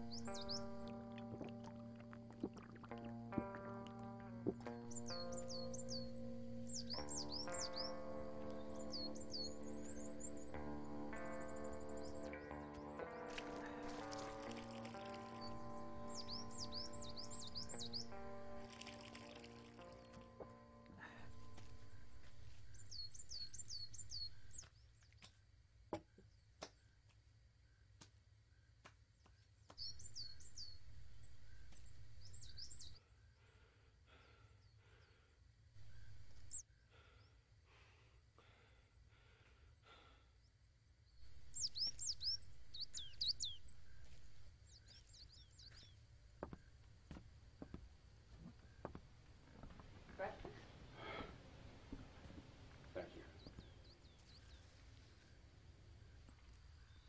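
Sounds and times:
soft sustained music chords: 0:00.0 - 0:24.6, 0:29.8 - 0:33.0, 0:35.8 - 0:36.6, 0:41.2 - 0:46.0, 0:49.1 - 0:57.0
bird chirps: 0:00.0 - 0:25.3, 0:29.3 - 0:33.0, 0:41.2 - 0:46.0, 0:48.4 - 0:57.0
faint outdoor background: 0:00.0 - 0:57.0.

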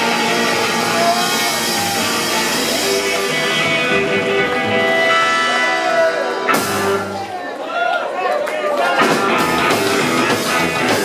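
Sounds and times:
gliding electric guitar notes: 0:00.0 - 0:07.4
rockabilly band playing: 0:00.0 - 0:07.7, 0:08.8 - 0:11.0.

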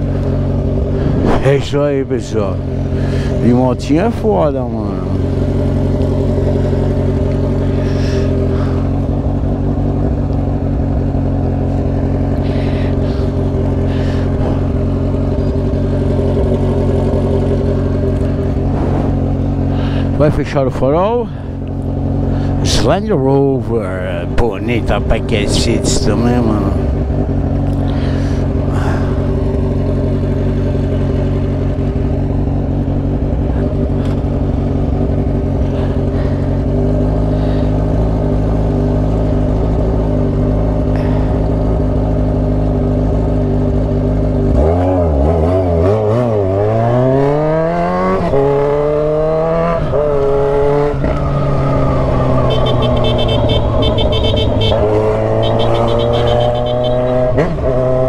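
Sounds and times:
motorcycle engine: 0:00.0 - 0:58.0.

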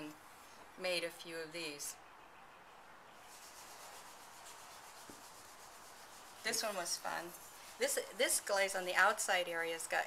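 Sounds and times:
low room hiss: 0:00.0 - 0:10.0
faint rubbing and handling: 0:03.2 - 0:08.9.

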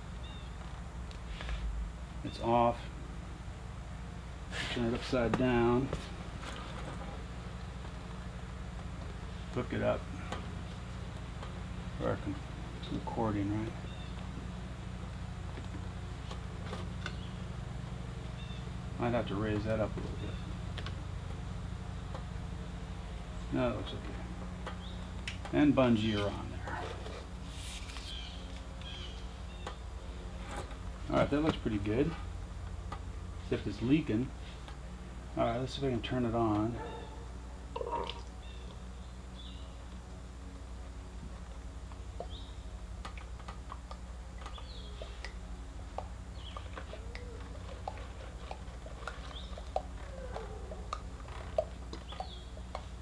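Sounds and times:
steady low hum: 0:00.0 - 0:53.0
handling rustle: 0:26.1 - 0:28.8
small clicks and ticks: 0:43.0 - 0:53.0.

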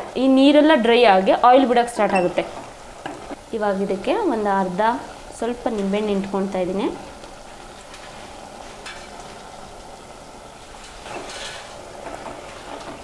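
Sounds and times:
meat sizzling in a pot: 0:00.0 - 0:13.0
spatula scraping and stirring: 0:07.5 - 0:09.4, 0:10.6 - 0:13.0.

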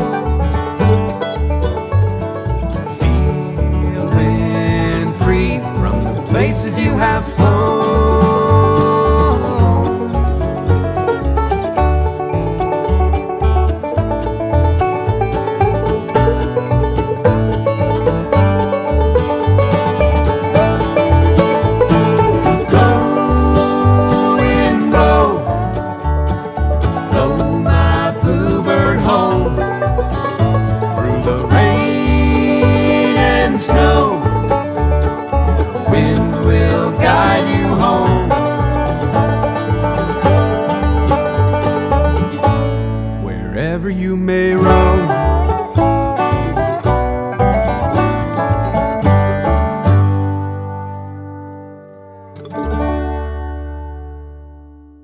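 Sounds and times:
upright bass beat: 0:00.0 - 0:50.5
acoustic guitar: 0:00.0 - 0:55.0
banjo: 0:00.0 - 0:55.0.

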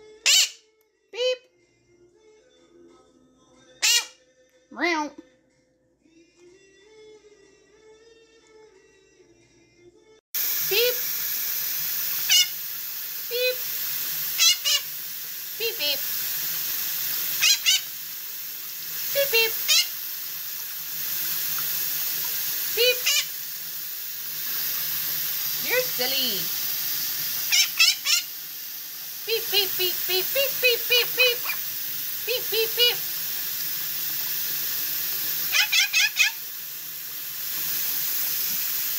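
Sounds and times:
parrot calls: 0:00.2 - 0:00.6, 0:03.8 - 0:04.2, 0:12.2 - 0:12.6, 0:14.3 - 0:14.9, 0:17.4 - 0:18.0, 0:19.1 - 0:20.0, 0:22.8 - 0:23.4, 0:27.4 - 0:28.4, 0:30.9 - 0:31.7, 0:35.4 - 0:36.4.

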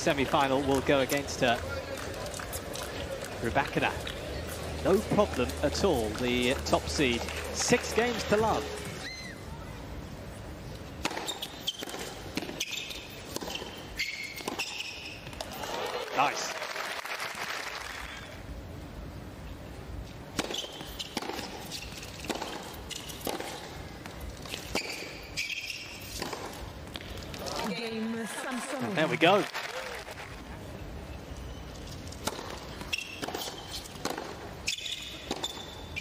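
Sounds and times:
tennis balls struck and bouncing: 0:00.0 - 0:08.8, 0:11.0 - 0:15.6, 0:20.3 - 0:27.7, 0:32.1 - 0:36.0
shoes squeaking on court: 0:00.1 - 0:09.4, 0:10.9 - 0:15.5, 0:20.4 - 0:28.0, 0:31.2 - 0:36.0.

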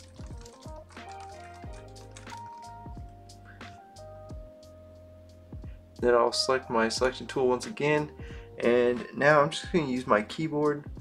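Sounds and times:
computer keyboard typing: 0:00.0 - 0:03.2
soft background music: 0:00.0 - 0:11.0.

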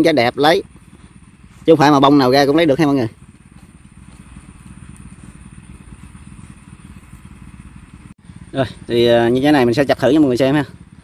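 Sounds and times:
distant small engine rumble: 0:00.0 - 0:11.0.

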